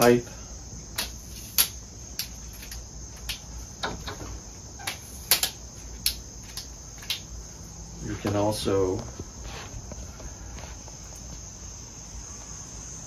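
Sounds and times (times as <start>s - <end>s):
steady high-pitched hum: 0.0s - 13.0s
tripod legs clicking and snapping: 1.0s - 4.2s, 4.8s - 7.3s.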